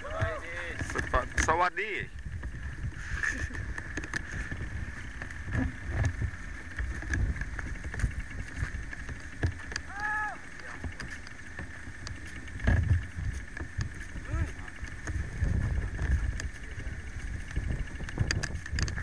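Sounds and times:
microphone handling rumble and knocks: 0.0s - 9.9s, 10.6s - 19.0s.

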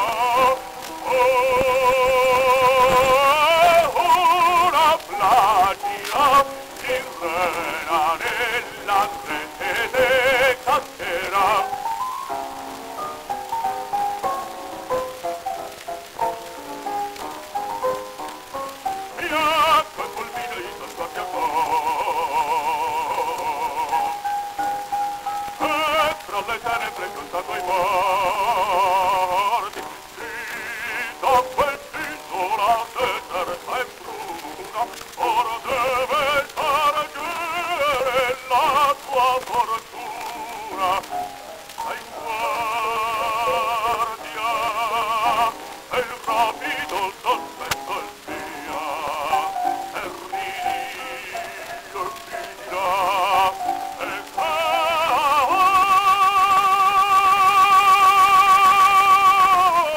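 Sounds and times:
baritone operatic singing: 0.0s - 59.9s
record surface hiss: 0.0s - 59.9s.

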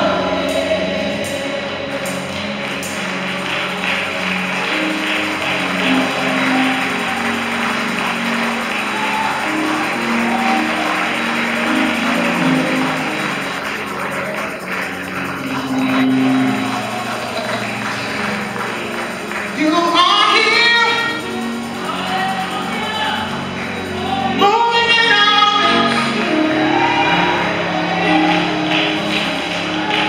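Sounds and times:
keyboard playing held chords: 0.0s - 30.0s
tambourine shaking: 2.9s - 25.7s.

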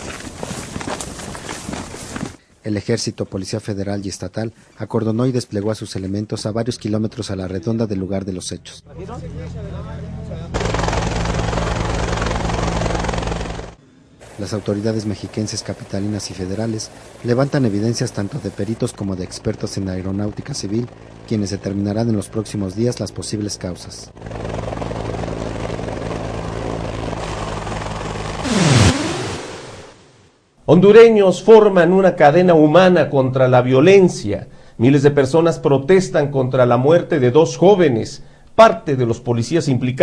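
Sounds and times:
helicopter engine and rotor drone: 9.2s - 16.3s, 16.9s - 29.1s
swoosh with falling pitch: 28.4s - 30.1s.

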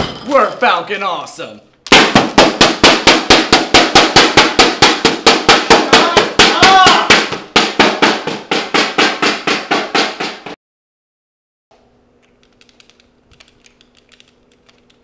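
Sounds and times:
person speaking: 0.2s - 1.8s, 5.8s - 7.3s.

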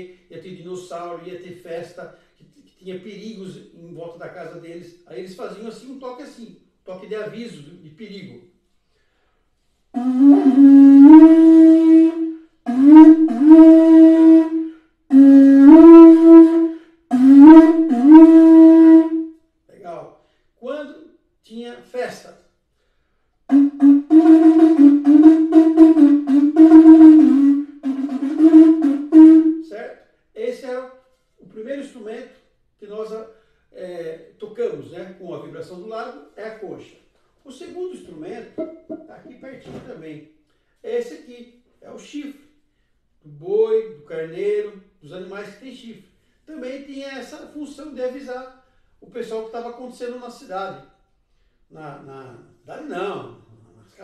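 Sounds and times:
conch shell horn blasts: 10.0s - 19.3s, 23.5s - 29.7s.

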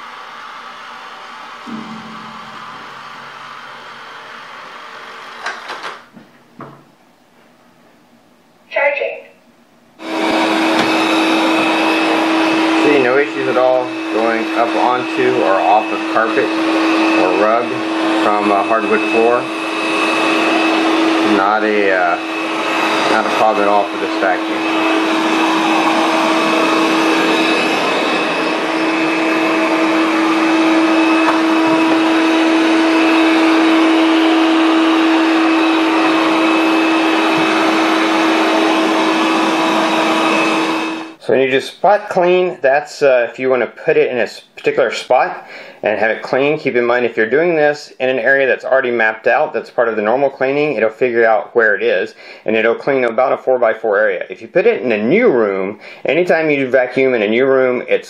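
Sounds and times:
robot vacuum motor hum: 10.0s - 41.2s.

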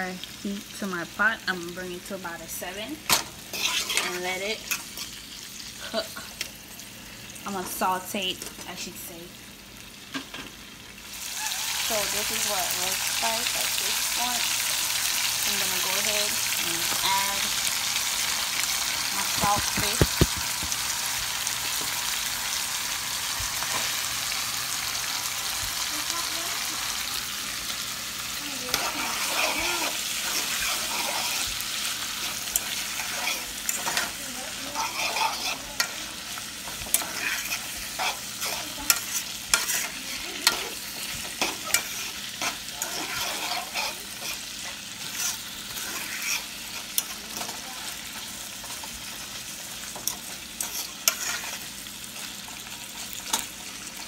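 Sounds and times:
food sizzling in hot oil: 0.0s - 54.0s
spatula scraping a pan: 3.5s - 5.2s, 19.0s - 20.8s, 28.6s - 47.6s, 48.6s - 51.7s.

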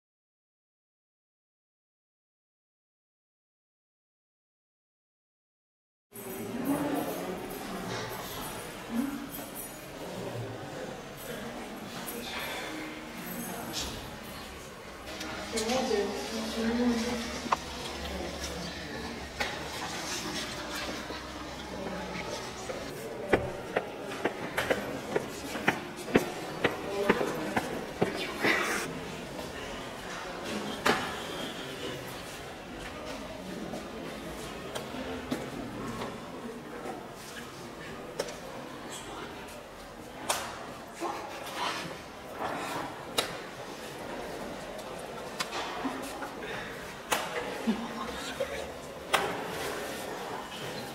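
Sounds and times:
boys murmuring: 25.0s - 29.8s.

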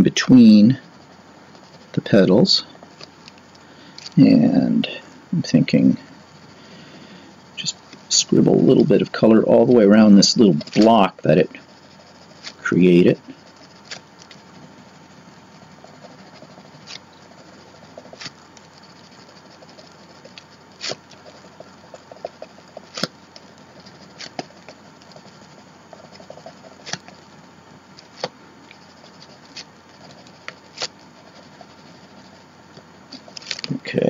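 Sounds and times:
crayon scribbling on paper: 0.0s - 34.0s
sharp ticks: 8.8s - 33.8s.

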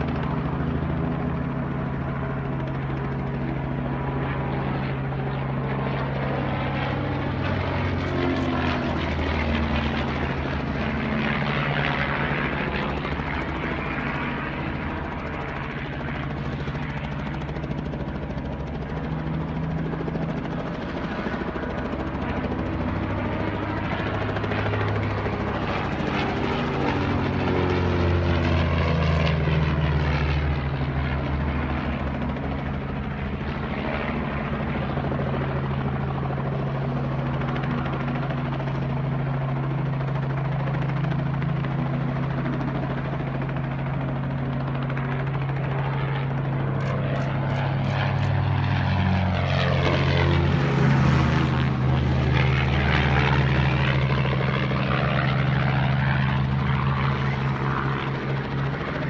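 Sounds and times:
biplane engine and propeller: 0.0s - 59.0s.

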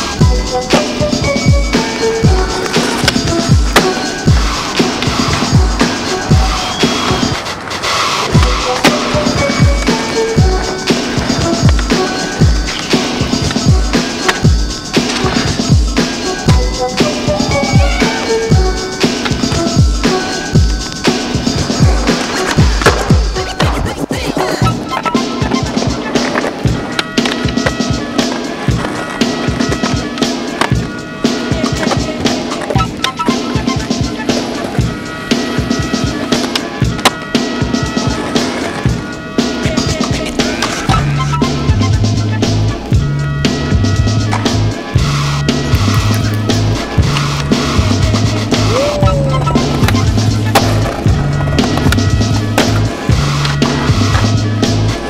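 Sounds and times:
music with steady beat: 0.0s - 7.5s, 8.2s - 55.0s
skateboard wheels rolling on concrete: 0.0s - 55.0s
skateboard grinding on ledge: 0.1s - 55.0s.

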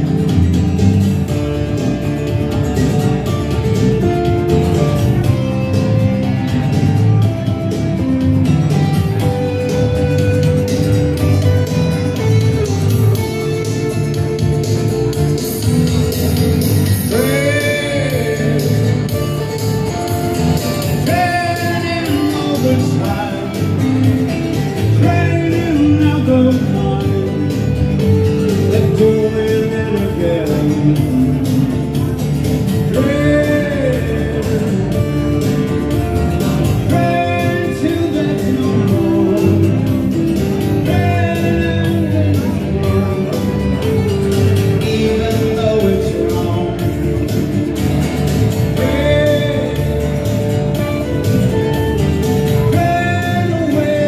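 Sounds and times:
electric bass: 0.0s - 54.0s
electric guitar: 0.0s - 54.0s
strummed acoustic guitar: 0.0s - 54.0s.

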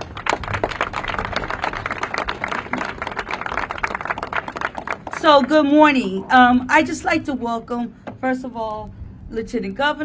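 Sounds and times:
audience applauding: 0.0s - 5.6s.

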